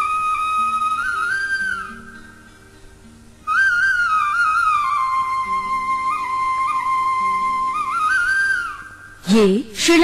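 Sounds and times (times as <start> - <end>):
flute melody: 0.0 - 9.5.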